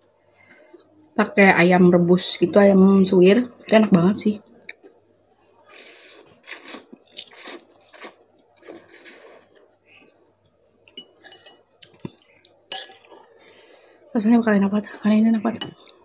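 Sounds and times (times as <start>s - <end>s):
noodles being slurped: 5.8s - 9.6s.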